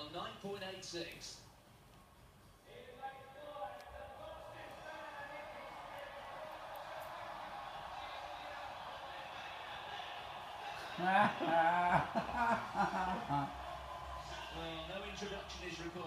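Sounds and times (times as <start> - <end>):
stadium crowd cheering: 2.7 - 16.0.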